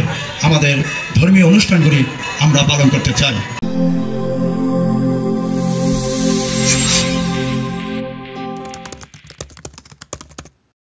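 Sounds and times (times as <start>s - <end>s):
music sting chord: 3.6s - 9.0s
keyboard typing clicks: 8.6s - 10.6s.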